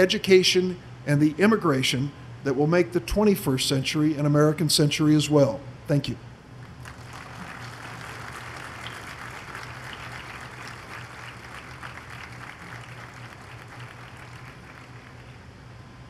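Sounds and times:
steady low hum: 0.0 - 16.0
audience clapping: 6.6 - 15.4.

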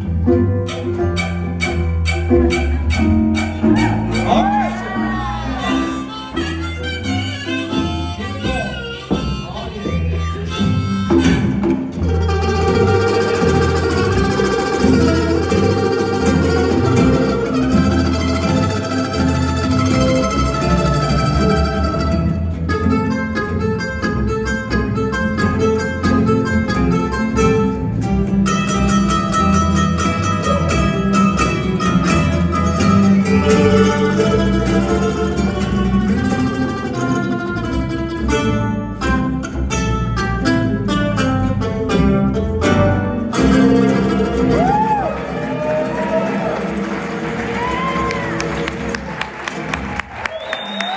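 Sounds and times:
harmonica bending notes: 0.0 - 44.5
plucked bass line: 0.0 - 48.8
strummed ukuleles: 0.0 - 50.9.

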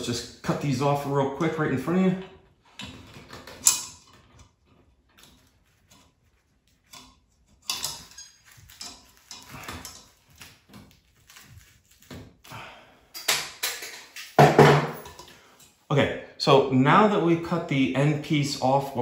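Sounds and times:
clicks and rustles from handling: 2.2 - 12.3
pliers snipping wire: 6.8 - 12.2.

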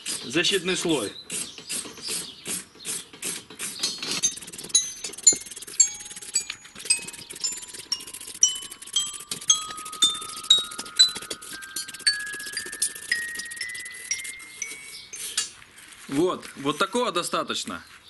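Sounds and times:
wire brush scrubbing rust: 0.0 - 17.1
bell-like background music: 5.8 - 15.4.

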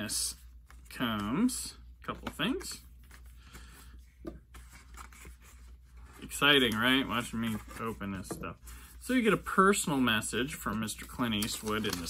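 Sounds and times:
paper and cardboard rustling: 0.3 - 12.0.

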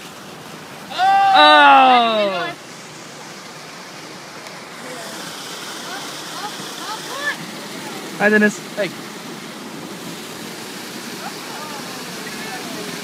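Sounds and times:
waterfall rushing: 0.0 - 13.0
person's drawn-out exclamation: 0.9 - 2.6.

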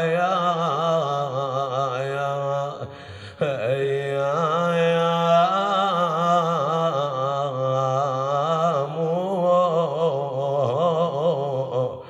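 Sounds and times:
man chanting slow melody: 0.0 - 12.0.

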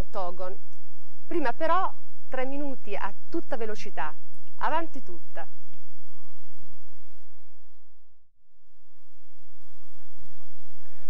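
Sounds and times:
recording hiss and hum: 0.0 - 11.0.

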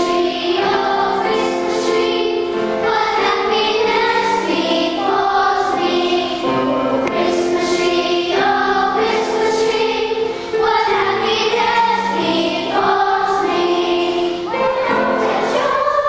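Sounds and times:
children's choir singing: 0.0 - 16.0.

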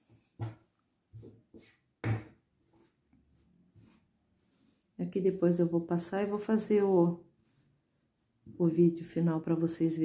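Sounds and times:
soft knocks and rubs: 0.0 - 4.8.

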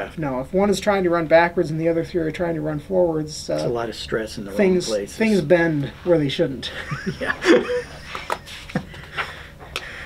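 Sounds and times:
person laughing: 6.7 - 9.2.

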